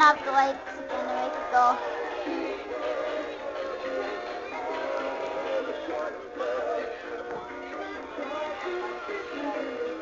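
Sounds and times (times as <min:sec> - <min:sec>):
synthetic male singing from toy speakers: 0:00.0 - 0:10.0.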